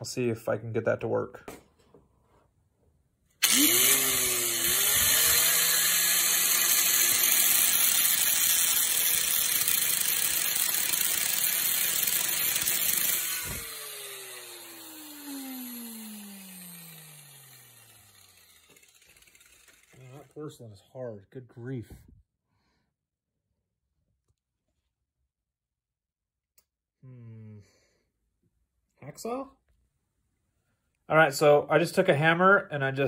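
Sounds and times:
angle grinder cutting: 3.4 - 20.4
grinder motor winding down: 3.4 - 20.4.

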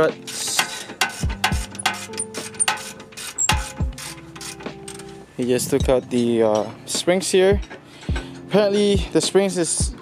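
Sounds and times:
hand ratchet clicking: 0.0 - 5.2, 5.9 - 9.3.

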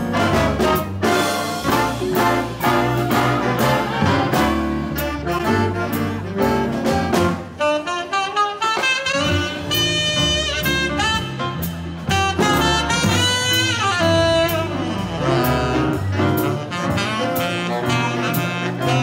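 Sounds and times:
big band swing jazz: 0.0 - 19.0
saxophone solo: 0.0 - 19.0.

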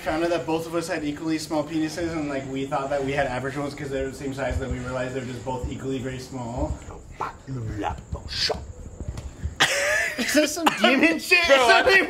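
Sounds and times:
breathy hiss: 0.0 - 11.1.

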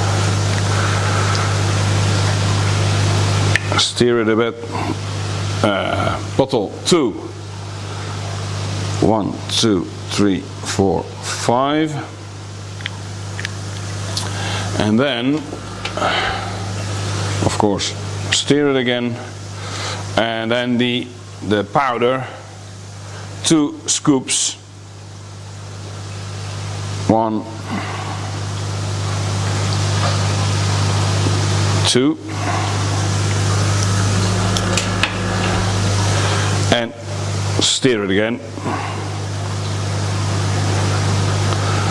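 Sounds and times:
churning aerated water: 0.0 - 41.9
pond pumps humming: 0.0 - 41.9.

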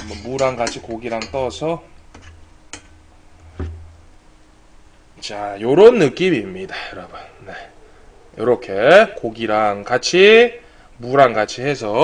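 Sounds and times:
metal ladle tapping pot: 0.0 - 1.6.

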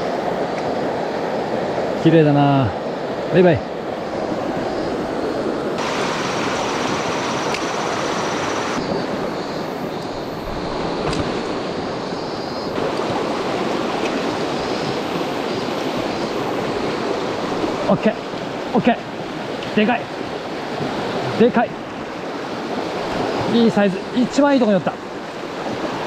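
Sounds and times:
stream rushing over rocks: 0.0 - 26.0.

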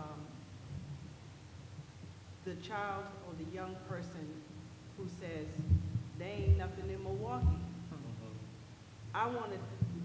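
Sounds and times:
woman talking: 0.0 - 0.4, 2.4 - 8.5, 9.2 - 10.0.

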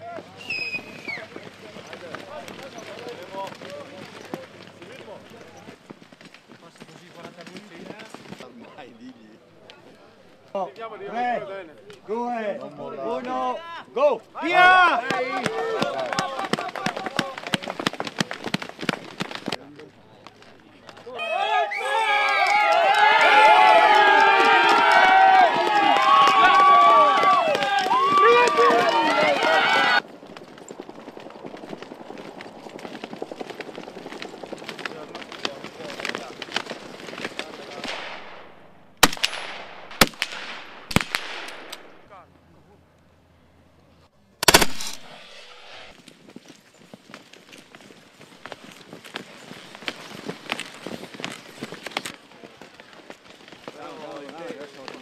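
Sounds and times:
skis scraping over snow: 0.0 - 9.2, 23.3 - 37.8, 45.3 - 55.0
crowd shouting and cheering: 14.4 - 17.3, 21.1 - 30.0
rifle shots: 37.8 - 42.0, 44.4 - 45.9.

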